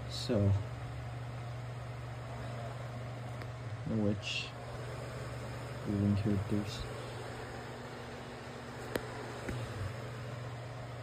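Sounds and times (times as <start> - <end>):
faint room hiss: 0.0 - 11.0
steady low hum: 0.0 - 11.0.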